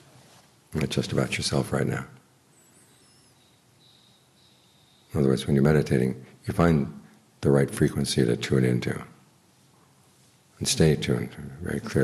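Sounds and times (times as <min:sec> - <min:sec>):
background hiss: 0:00.0 - 0:12.0
faint high bird chirps: 0:02.5 - 0:05.2.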